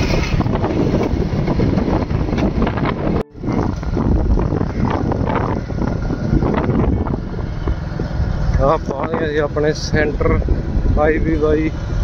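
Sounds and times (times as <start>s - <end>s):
moving vehicle rumble: 0.0s - 12.0s
wind buffeting microphone: 0.0s - 12.0s.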